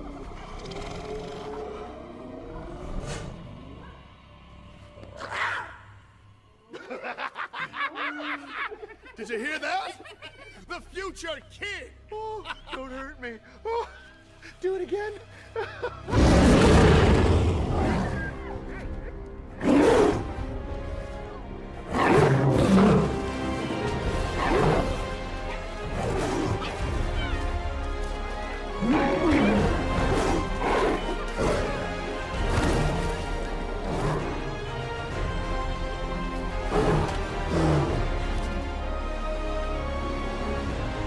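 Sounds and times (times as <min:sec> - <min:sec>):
lion growling and roaring: 0:00.0 - 0:05.7, 0:16.0 - 0:21.2, 0:21.8 - 0:35.6, 0:36.2 - 0:38.8
film background music: 0:00.0 - 0:41.0
tense orchestral score: 0:00.0 - 0:41.0.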